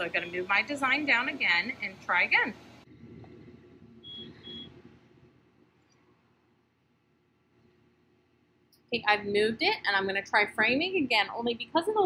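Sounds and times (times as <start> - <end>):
faint low hum: 0.0 - 12.0
short high beeps: 4.0 - 4.7.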